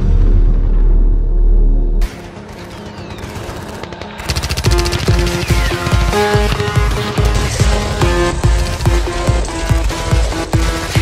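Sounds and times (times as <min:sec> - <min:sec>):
rapid machine gun fire: 0:02.0 - 0:11.0.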